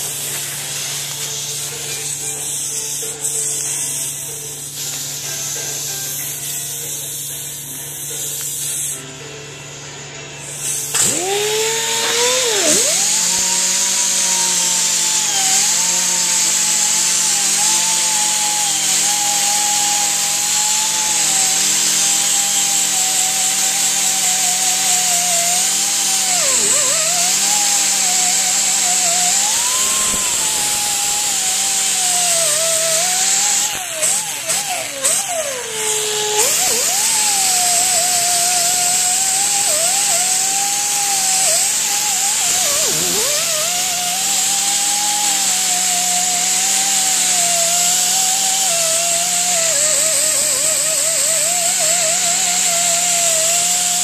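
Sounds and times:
wire wheel grinding steel: 10.4 - 54.0.

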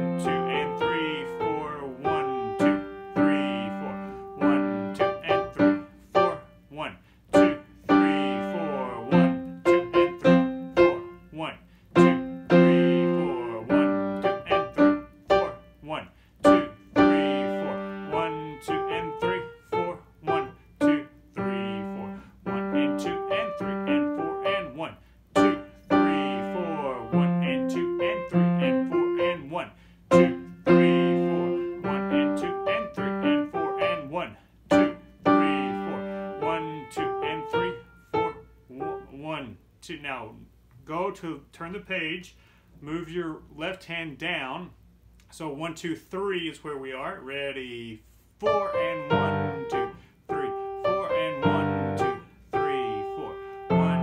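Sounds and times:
grand piano slow melody: 0.0 - 6.6, 7.3 - 11.2, 11.9 - 15.8, 16.4 - 29.5, 30.1 - 39.1, 48.4 - 54.0.

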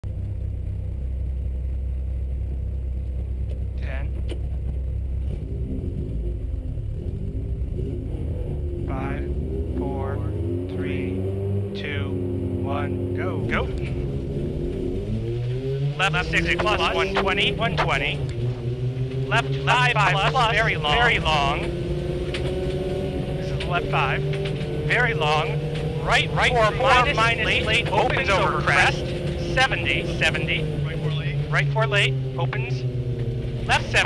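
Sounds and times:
car engine idling: 0.0 - 34.0
person speaking: 16.0 - 18.2, 19.3 - 21.7, 24.9 - 32.6.

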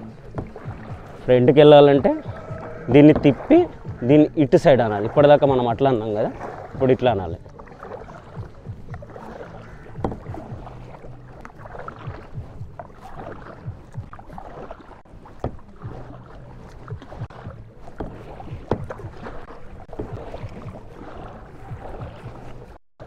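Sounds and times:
kayak paddle splashing water: 0.0 - 22.8.

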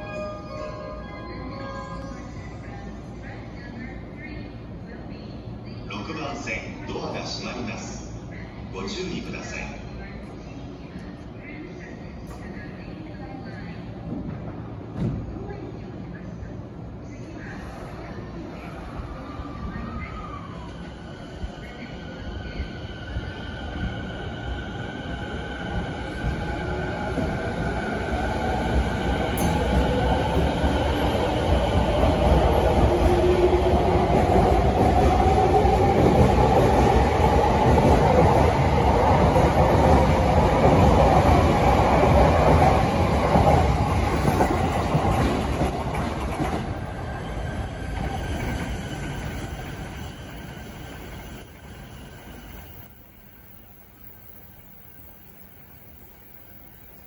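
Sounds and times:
train wheels rumbling on track: 20.6 - 57.0.

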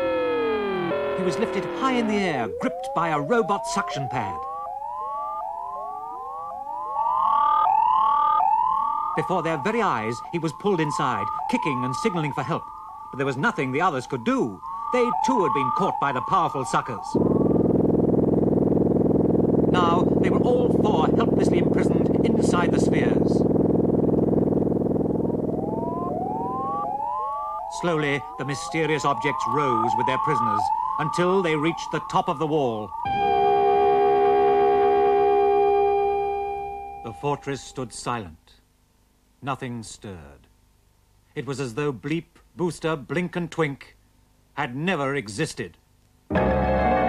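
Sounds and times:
rising electronic pitch glides: 0.0 - 19.1, 24.3 - 37.7
steady held electronic tone: 0.0 - 38.1, 46.3 - 47.0
low pulsing hum: 16.2 - 27.7, 33.0 - 37.4.

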